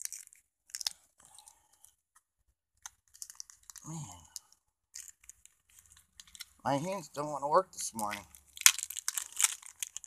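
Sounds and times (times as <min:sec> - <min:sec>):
paper envelope crinkling: 0:02.8 - 0:06.6, 0:07.8 - 0:10.0.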